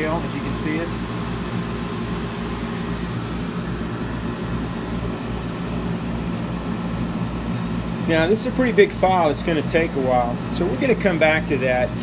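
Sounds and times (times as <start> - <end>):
laser engraver humming and pulsing: 0.0 - 12.0.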